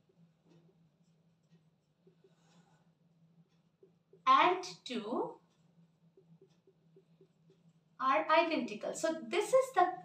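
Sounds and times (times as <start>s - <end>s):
marker pen writing on whiteboard: 0.0s - 8.6s
low steady hum: 0.0s - 10.0s.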